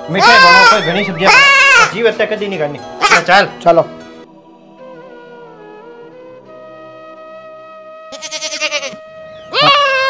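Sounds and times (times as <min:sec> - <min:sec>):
young goat bleating: 0:00.2 - 0:02.0, 0:08.1 - 0:10.0.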